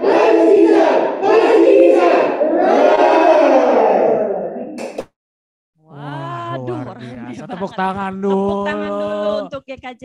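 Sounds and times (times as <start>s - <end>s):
children shouting together: 0.0s - 4.5s.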